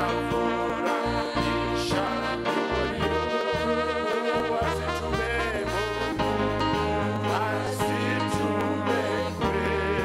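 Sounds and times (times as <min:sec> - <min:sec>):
amplified instrumental backing: 0:00.0 - 0:10.0
group singing gospel into microphones: 0:00.0 - 0:10.0
held bass notes: 0:00.0 - 0:10.0.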